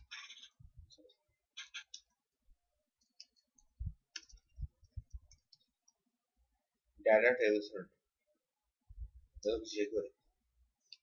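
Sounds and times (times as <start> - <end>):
soft low thumps: 3.7 - 5.4, 8.9 - 9.5.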